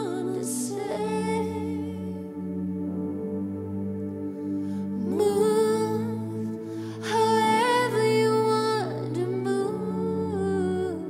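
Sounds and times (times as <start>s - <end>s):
soft sustained keyboard pad: 0.0s - 11.0s.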